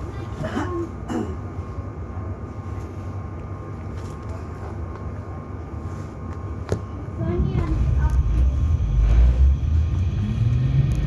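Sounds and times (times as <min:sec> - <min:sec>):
faint steady whine: 0:00.0 - 0:11.0
tram equipment low hum: 0:00.0 - 0:11.0.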